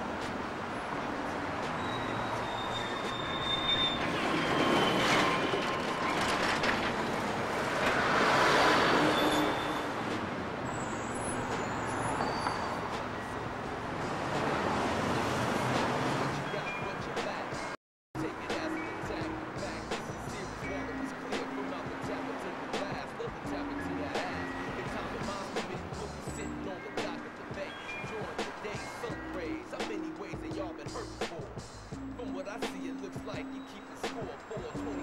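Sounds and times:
vehicle noise: 0:00.0 - 0:35.0
faint high-pitched squeals: 0:01.7 - 0:06.8.

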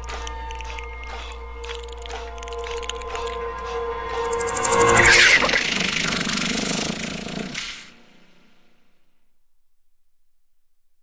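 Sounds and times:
rough noisy rumble: 0:00.0 - 0:08.6
loud hit with falling sweep: 0:02.4 - 0:08.4.

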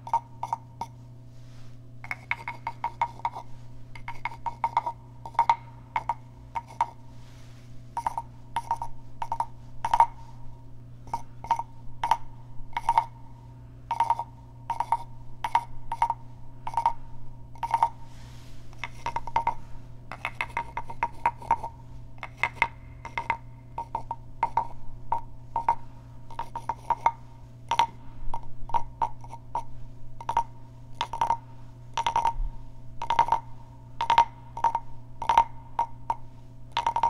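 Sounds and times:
wooden frog percussion knocks: 0:02.0 - 0:03.4, 0:04.0 - 0:07.0, 0:08.0 - 0:10.2, 0:11.1 - 0:13.2, 0:13.9 - 0:17.0, 0:17.6 - 0:17.9, 0:18.8 - 0:31.4, 0:32.0 - 0:32.4, 0:33.0 - 0:37.0.

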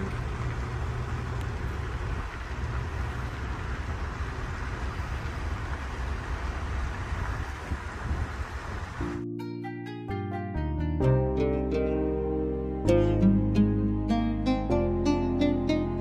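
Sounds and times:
outdoor ambience hiss: 0:00.0 - 0:09.2
wind rumbling on microphone: 0:00.0 - 0:09.2.

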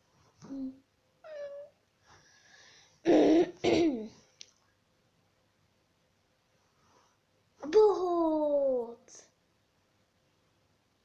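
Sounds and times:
girl making wordless vocal sounds: 0:07.6 - 0:09.3.

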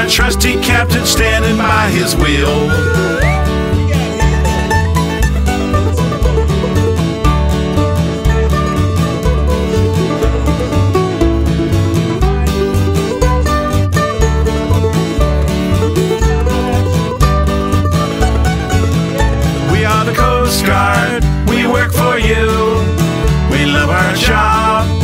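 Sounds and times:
plucked string instruments: 0:00.0 - 0:25.0
pulsing bass beat: 0:00.0 - 0:25.0.

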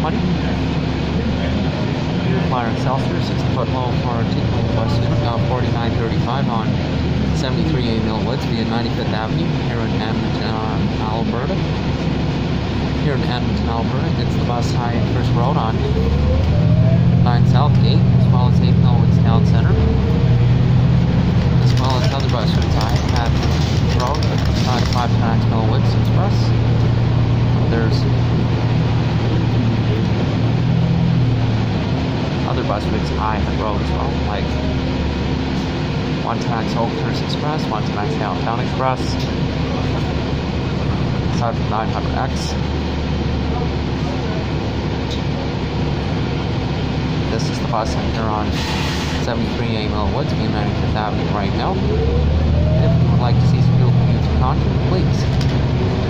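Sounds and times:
people talking: 0:00.0 - 0:11.8, 0:13.0 - 0:16.5, 0:17.1 - 0:20.0, 0:21.5 - 0:26.6, 0:27.5 - 0:28.4, 0:32.4 - 0:34.9, 0:36.2 - 0:42.7, 0:43.4 - 0:45.7, 0:47.2 - 0:56.0
bus engine drone: 0:00.0 - 0:56.0
road noise: 0:00.0 - 0:56.0.

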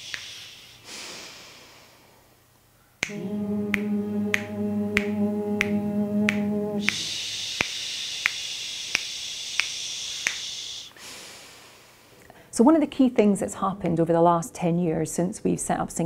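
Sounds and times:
finger snaps: 0:00.0 - 0:00.6, 0:03.0 - 0:10.9
group hissing out-breath: 0:00.0 - 0:02.2, 0:06.8 - 0:12.2
group humming a held note: 0:03.0 - 0:08.0.

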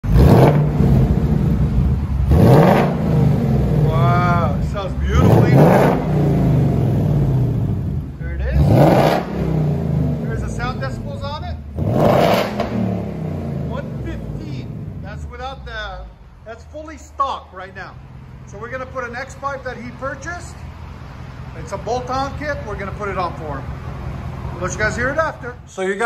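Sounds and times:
car engine idling and revving: 0:00.0 - 0:25.8.

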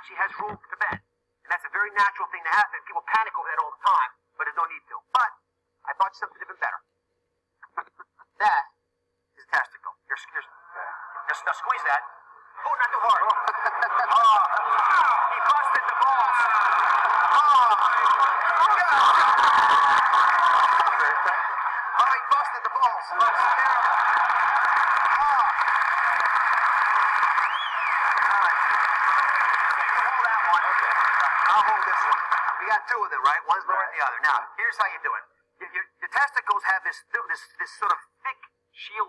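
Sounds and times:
audience laughing and chattering: 0:12.6 - 0:32.8.

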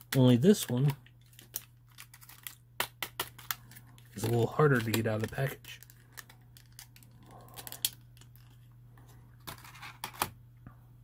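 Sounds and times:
plastic packaging crackling: 0:00.1 - 0:08.6.

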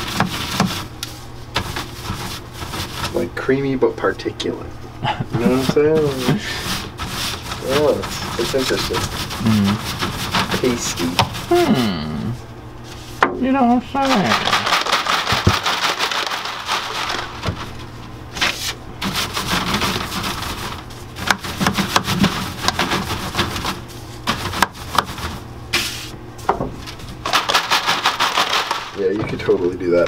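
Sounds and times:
rubbing strokes in cornstarch: 0:00.0 - 0:03.2, 0:05.4 - 0:11.5, 0:18.4 - 0:26.2.

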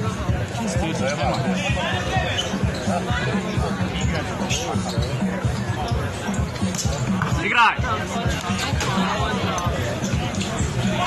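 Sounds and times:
background music: 0:00.0 - 0:11.0
chatter of voices: 0:00.0 - 0:11.0.

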